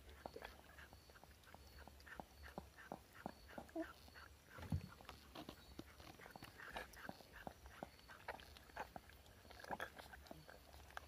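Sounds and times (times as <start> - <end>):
faint wet clicks and smacks: 4.9 - 11.0.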